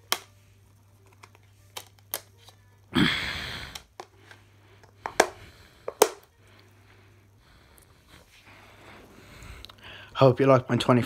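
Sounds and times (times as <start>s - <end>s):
plastic case clicks: 5.0s - 6.3s.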